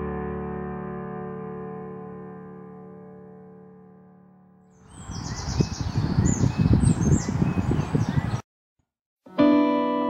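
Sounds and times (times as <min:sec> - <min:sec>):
songbirds chirping: 0:04.8 - 0:08.4.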